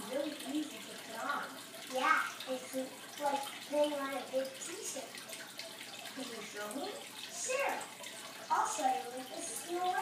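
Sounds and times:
girls talking on television: 0:00.0 - 0:10.0.

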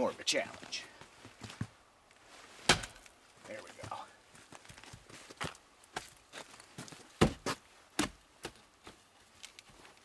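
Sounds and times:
axe chopping log: 0:02.6 - 0:03.1, 0:07.2 - 0:08.2.

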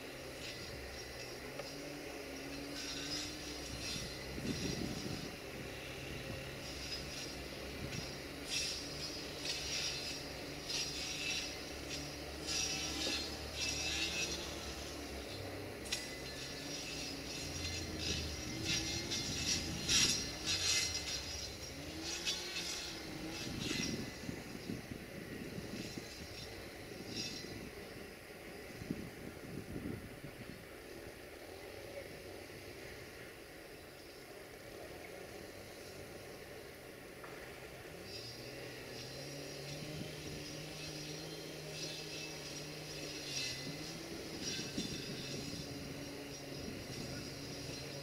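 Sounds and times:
freight train wheels clicking on rail joints: 0:00.0 - 0:48.0.

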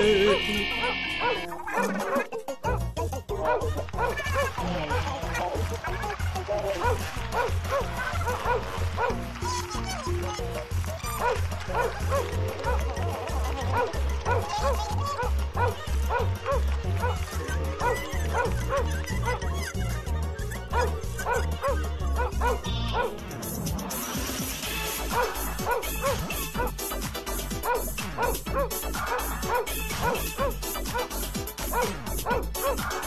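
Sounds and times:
cartoon dog barking: 0:00.0 - 0:12.9, 0:13.5 - 0:23.2, 0:25.0 - 0:26.8, 0:27.6 - 0:31.1, 0:31.7 - 0:33.0
background music with pulsing beat: 0:00.0 - 0:33.0.

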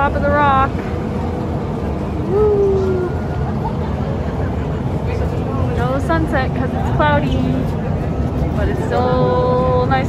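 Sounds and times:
faint chatter of people: 0:00.0 - 0:10.0.

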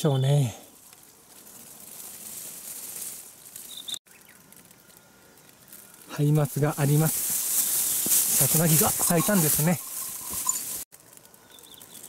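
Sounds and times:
soft high hiss: 0:00.1 - 0:12.0
bird chirp: 0:03.6 - 0:04.5, 0:11.4 - 0:12.0.

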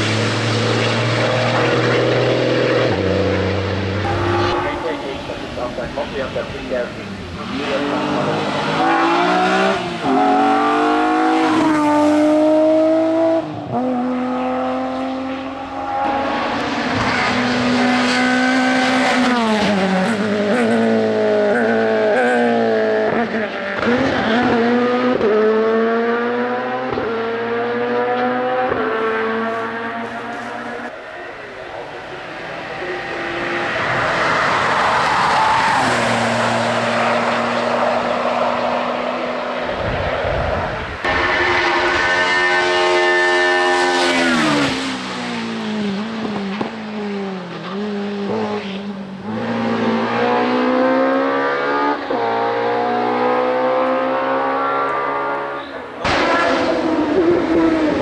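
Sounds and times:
race car engines at full throttle: 0:00.0 - 0:58.0
rushing burst of noise: 0:04.0 - 0:08.0.

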